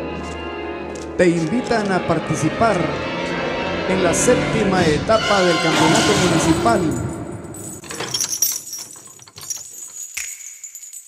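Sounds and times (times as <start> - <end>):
metallic jingling and clinking: 6.8 - 11.0.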